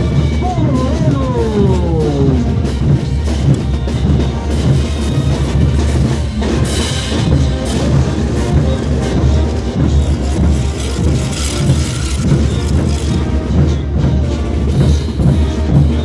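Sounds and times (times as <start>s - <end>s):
festive band music: 0.0s - 16.0s
steady drum beat: 0.0s - 16.0s.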